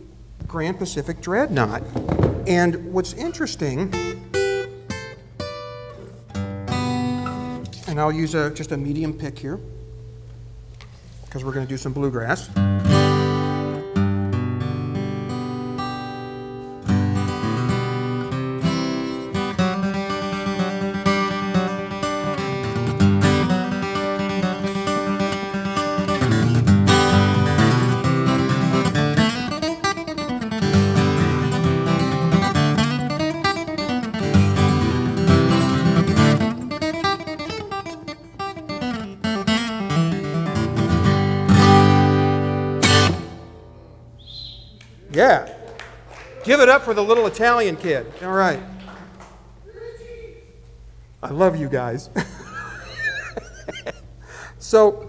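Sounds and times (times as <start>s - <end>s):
acoustic guitar flatpicked: 0.0s - 44.2s.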